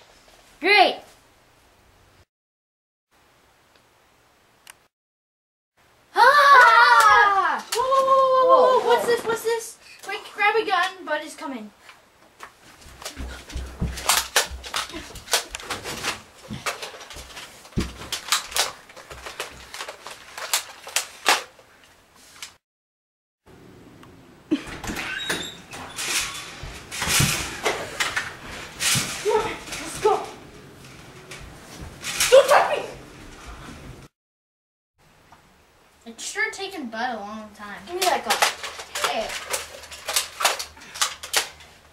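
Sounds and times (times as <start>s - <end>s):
boys crying out: 6.2s - 9.1s.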